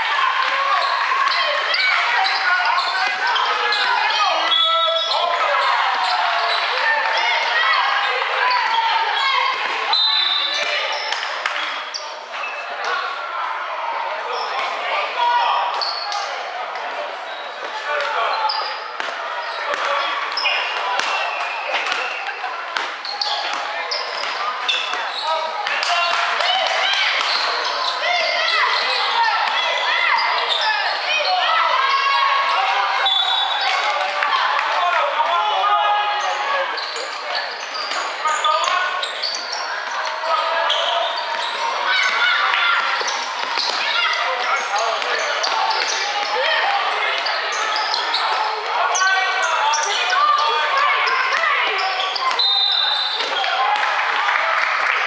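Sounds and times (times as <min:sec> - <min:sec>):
voices talking and calling: 0:00.0 - 0:55.0.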